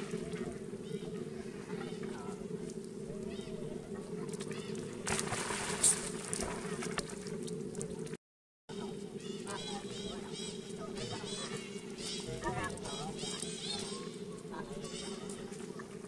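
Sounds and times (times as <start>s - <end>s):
shallow water flowing: 0.0s - 8.2s
monkeys giving squeaky calls: 9.2s - 14.2s.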